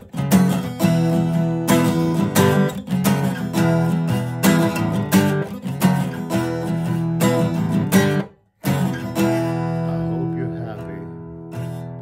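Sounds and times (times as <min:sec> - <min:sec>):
acoustic guitar strumming chords: 0:00.0 - 0:12.0.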